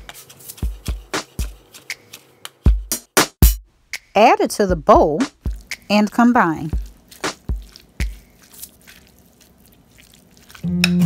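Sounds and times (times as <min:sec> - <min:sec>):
spoon stirring salad in bowl: 0:06.7 - 0:11.0
acoustic guitar music: 0:10.6 - 0:11.0.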